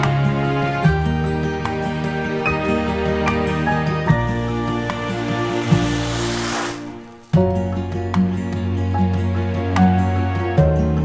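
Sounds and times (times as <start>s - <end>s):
soft background music: 0.0s - 11.0s
hiss: 5.1s - 7.4s.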